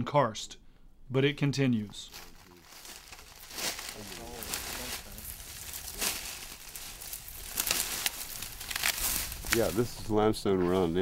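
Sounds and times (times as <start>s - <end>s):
footsteps crunching through dry brush: 2.0s - 11.0s.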